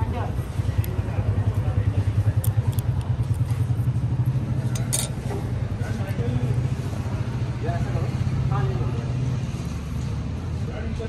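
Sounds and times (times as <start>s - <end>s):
engine rumble with fast pulse: 0.0s - 11.0s.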